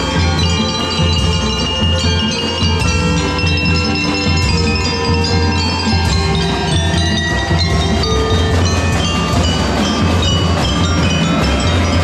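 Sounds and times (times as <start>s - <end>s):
bell lyre melody: 0.0s - 12.0s
marching drums: 0.0s - 12.0s.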